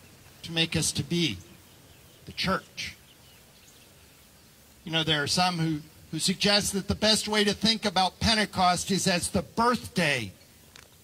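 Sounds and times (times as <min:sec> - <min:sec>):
faint outdoor background noise: 0:00.0 - 0:11.0
man speaking: 0:00.4 - 0:01.5, 0:02.3 - 0:03.0, 0:04.8 - 0:10.4.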